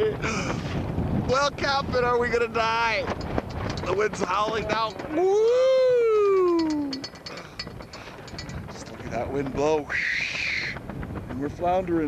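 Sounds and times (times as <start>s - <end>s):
person imitating howling wind: 5.1s - 7.0s, 9.8s - 10.8s.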